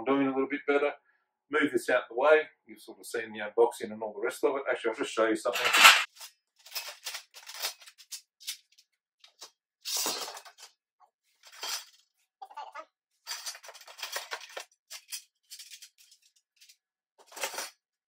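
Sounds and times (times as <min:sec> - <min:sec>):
metal pieces scraping: 0:05.5 - 0:08.7, 0:09.8 - 0:10.7, 0:11.4 - 0:12.0, 0:13.3 - 0:17.8
metal parts clinking: 0:05.6 - 0:08.6, 0:11.4 - 0:12.0, 0:13.3 - 0:17.8.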